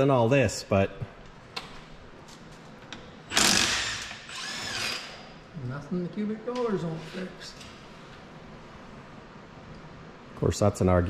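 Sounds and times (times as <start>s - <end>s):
power tool motor whining: 3.3s - 5.2s.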